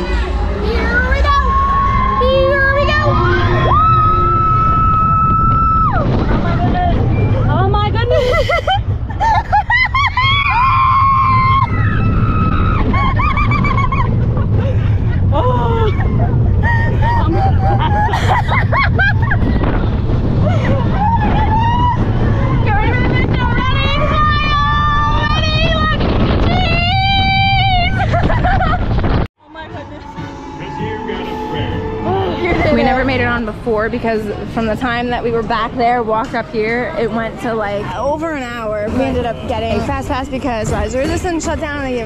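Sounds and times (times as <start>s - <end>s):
wind on microphone: 0.0s - 37.3s
roller coaster train rumble: 0.0s - 42.0s.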